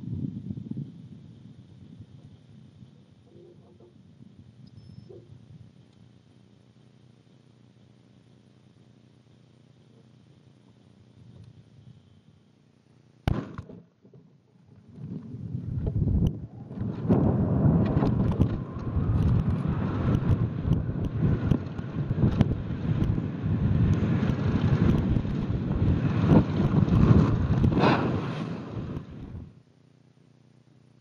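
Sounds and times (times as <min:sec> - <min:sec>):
rushing wind on microphone: 0:00.0 - 0:02.2, 0:15.0 - 0:29.6.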